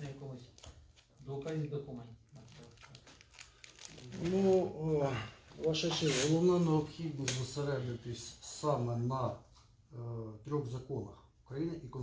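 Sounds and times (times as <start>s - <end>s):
paper rustling and crinkling: 0.0s - 4.8s.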